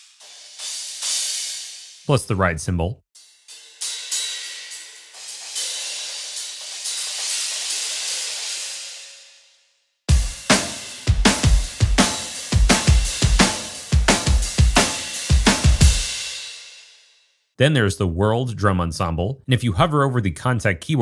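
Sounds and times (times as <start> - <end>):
processed drum groove: 0.0 - 2.4, 3.6 - 8.7, 10.1 - 16.6.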